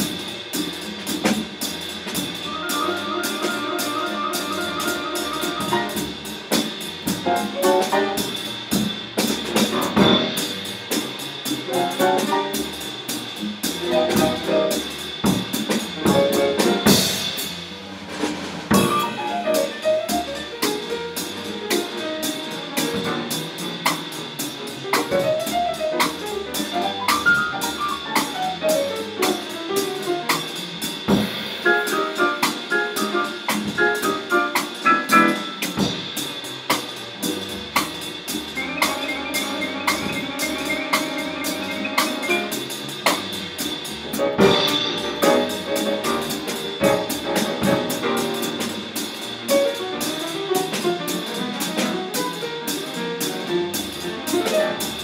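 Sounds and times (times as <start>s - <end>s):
bass: 0.0s - 55.0s
busy drumming and cymbals: 0.0s - 55.0s
piano: 0.0s - 55.0s.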